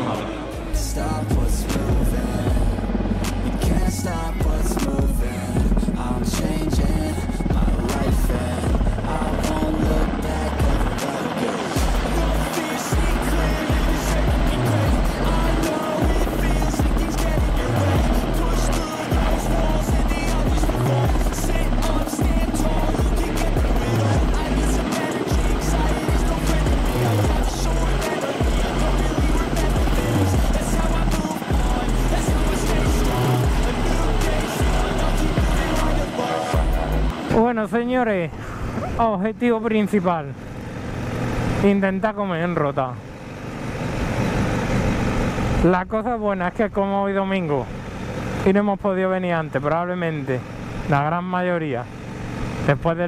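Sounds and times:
background music with steady beat: 0.0s - 37.8s
helicopter rotor hovering: 0.0s - 53.0s.

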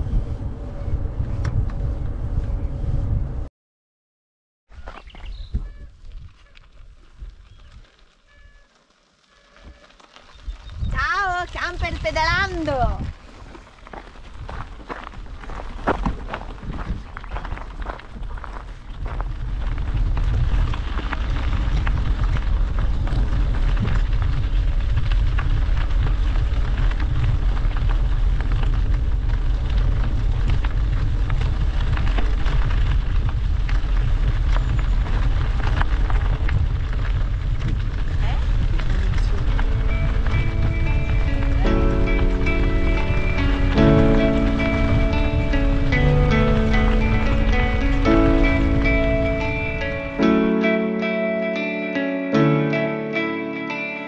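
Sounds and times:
wind buffeting microphone: 0.0s - 3.5s, 4.8s - 8.4s, 10.2s - 50.3s
tyres on gravel: 4.7s - 50.9s
background music: 39.6s - 54.0s.

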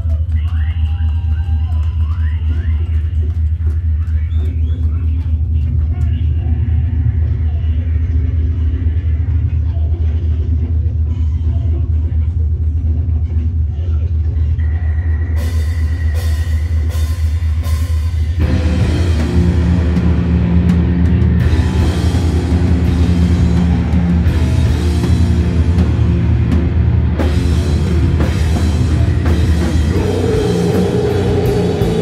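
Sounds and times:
low bass drone from amplifiers: 0.0s - 32.0s.

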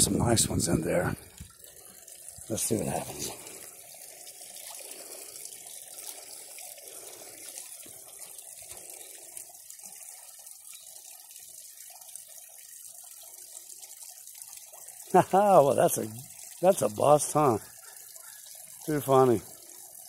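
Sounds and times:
small waterfall splashing: 0.0s - 20.0s.

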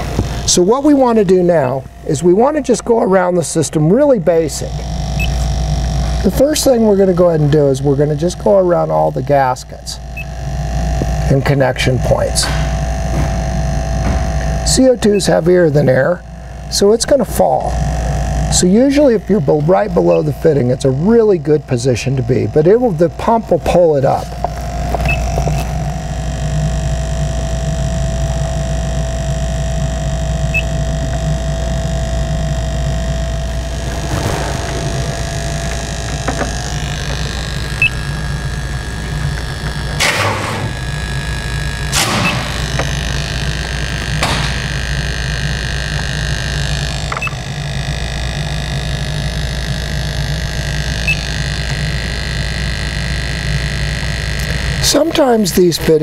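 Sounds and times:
sampling pump humming: 0.0s - 56.0s.

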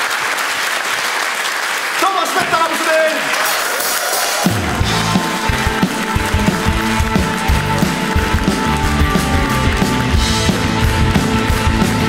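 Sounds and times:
live rock band playing: 3.4s - 12.0s
drum beat: 3.8s - 12.0s
driving bass line: 4.4s - 12.0s.

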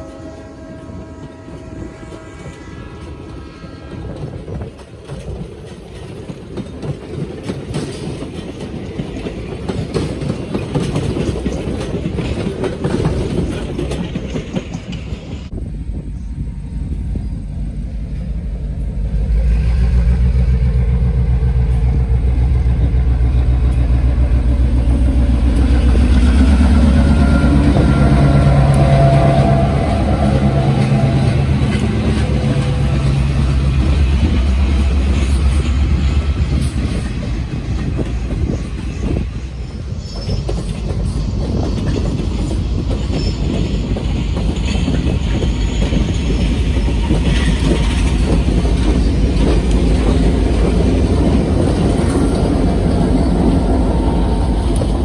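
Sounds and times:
diesel locomotive engine drone: 0.0s - 55.0s
train wheels clicking over rail joints: 1.2s - 55.0s.

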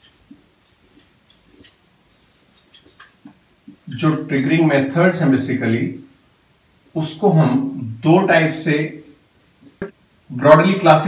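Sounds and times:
marker scratching on whiteboard: 0.0s - 4.5s.

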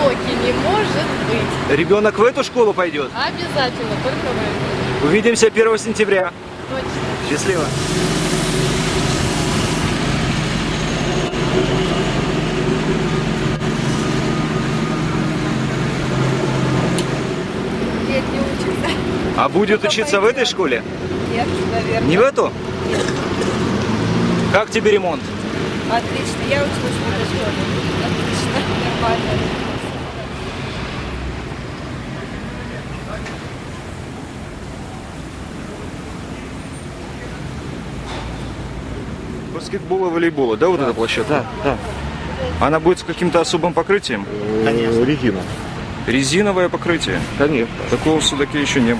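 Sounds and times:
construction machinery engine running: 0.0s - 48.9s.

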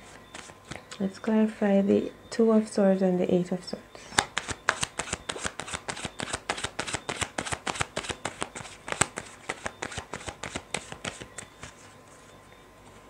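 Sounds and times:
cards being shuffled: 4.2s - 11.9s.

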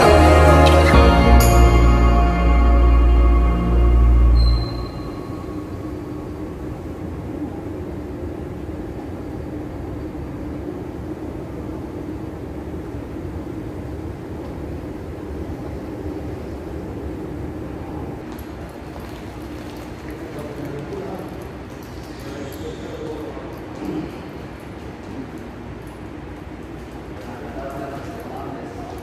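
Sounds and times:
escalator mechanical hum: 0.0s - 29.0s.

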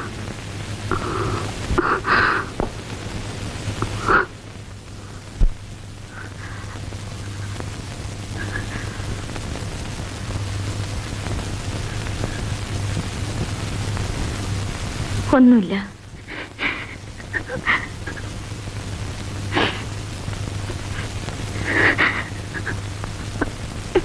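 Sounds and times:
low hum: 0.0s - 24.0s
steady rain: 0.0s - 24.0s
woman sobbing and breathing: 16.2s - 18.3s, 19.5s - 19.9s, 20.9s - 24.0s.

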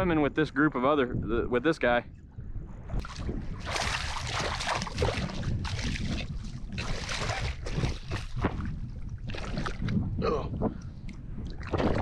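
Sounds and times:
wind rumble on microphone: 0.0s - 12.0s
fish thrashing and splashing: 3.0s - 9.9s.

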